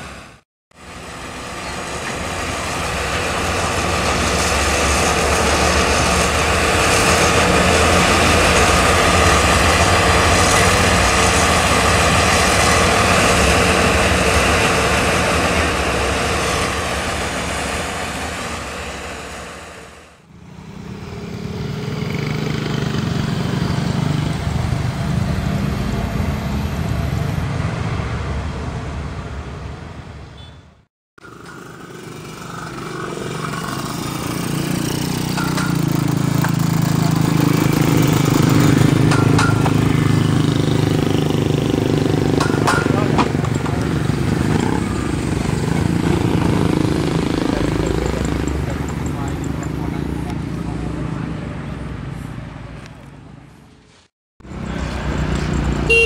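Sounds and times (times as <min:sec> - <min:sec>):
train rolling past: 0:00.0 - 0:30.3, 0:31.2 - 0:52.8.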